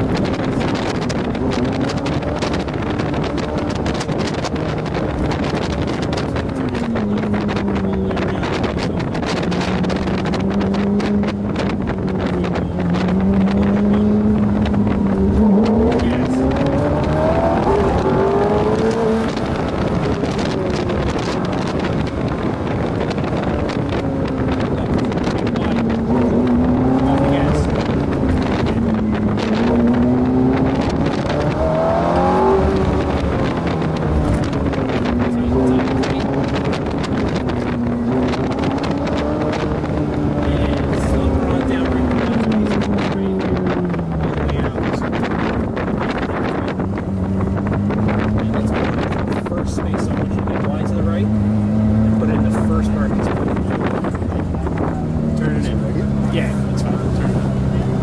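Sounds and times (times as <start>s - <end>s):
car engine revving: 0.0s - 58.0s.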